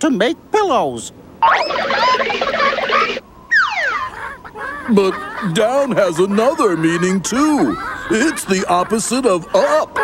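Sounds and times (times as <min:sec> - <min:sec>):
falling whistle glide: 0:01.4 - 0:04.2
cartoon chirps and squawks: 0:01.4 - 0:04.5.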